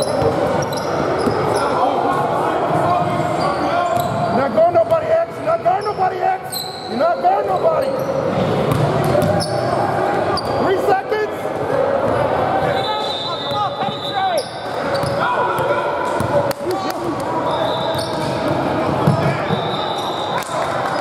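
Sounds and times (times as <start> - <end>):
sneaker squeaks: 0.0 - 1.8, 3.0 - 4.9, 5.7 - 10.7, 12.6 - 16.3, 17.1 - 21.0.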